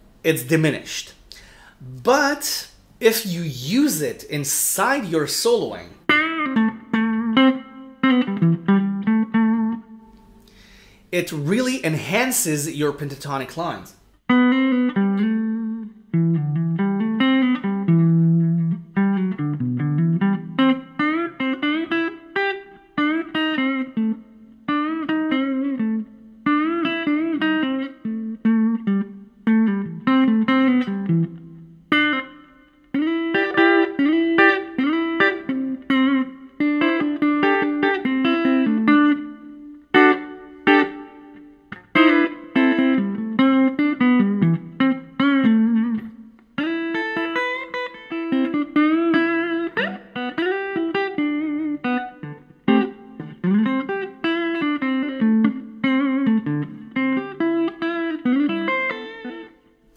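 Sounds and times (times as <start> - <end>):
electric guitar solo: 0.4 - 13.6, 14.3 - 59.9.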